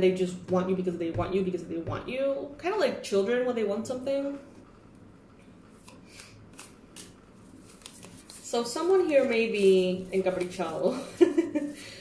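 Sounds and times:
cards swishing and flicking: 5.8s - 10.8s.

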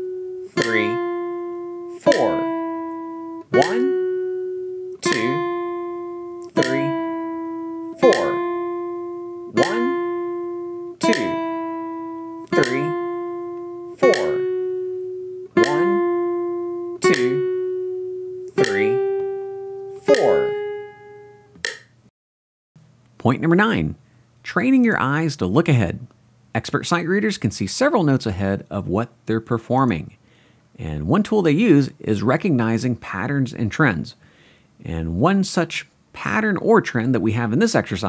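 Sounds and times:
nylon-string guitar plucked notes: 0.0s - 21.9s.

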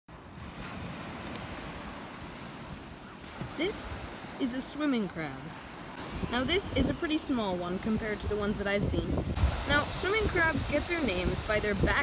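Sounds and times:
surf washing: 0.1s - 12.0s
wind buffeting microphone: 5.6s - 12.0s.

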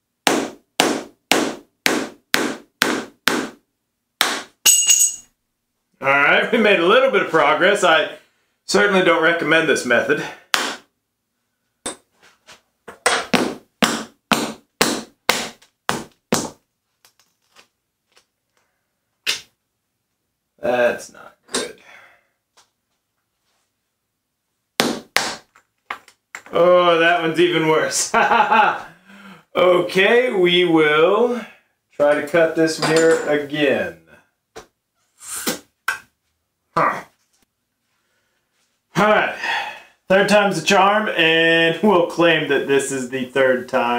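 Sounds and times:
breathy noise: 28.8s - 29.6s, 39.3s - 40.0s.

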